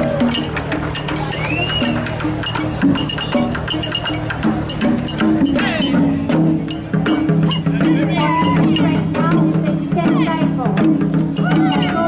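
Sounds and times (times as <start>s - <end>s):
low melodic notes: 0.0s - 12.0s
sharp clicks and knocks: 0.3s - 7.2s.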